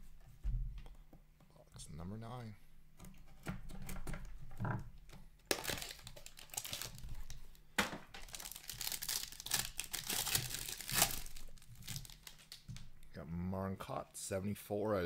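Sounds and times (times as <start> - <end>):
sharp cracks of foil: 5.5 - 7.0, 8.2 - 12.8
foil wrapper crinkling and tearing: 5.5 - 7.5, 8.2 - 12.8.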